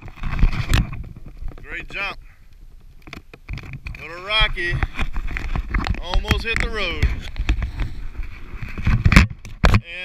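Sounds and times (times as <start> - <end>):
wind rumbling on microphone: 0.0 - 10.0
knocks and rustling: 2.7 - 9.8.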